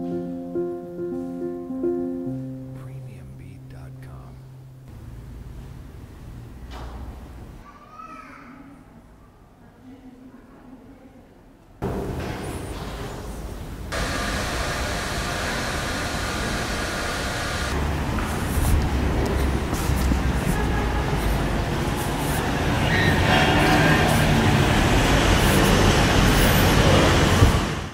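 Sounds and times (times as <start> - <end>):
road traffic noise: 4.9 - 7.6, 13.5 - 27.9.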